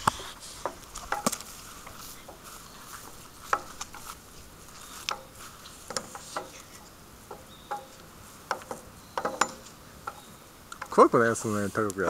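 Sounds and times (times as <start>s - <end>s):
swing chains creaking and clinking: 0.0s - 12.0s.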